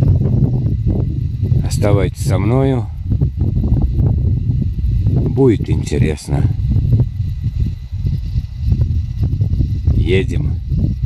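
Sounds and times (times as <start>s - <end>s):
car road and wind noise: 0.0s - 11.0s.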